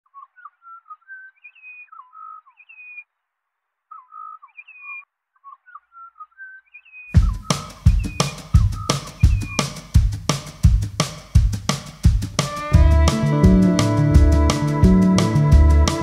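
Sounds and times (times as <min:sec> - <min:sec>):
bird whistling song: 0:00.2 - 0:03.0, 0:03.9 - 0:09.7
drum kit with heavy kick drum: 0:07.2 - 0:16.0.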